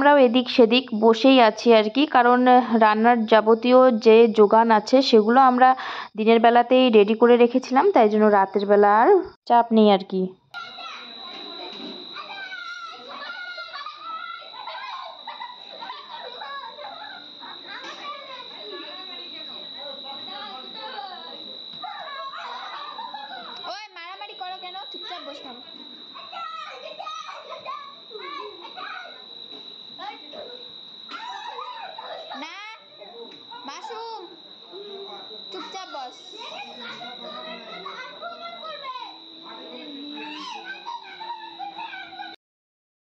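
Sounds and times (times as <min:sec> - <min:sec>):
children calling out and squealing: 0:10.6 - 0:42.4
high-pitched whine: 0:10.6 - 0:42.4
murmur of voices: 0:10.7 - 0:26.5, 0:32.4 - 0:42.4.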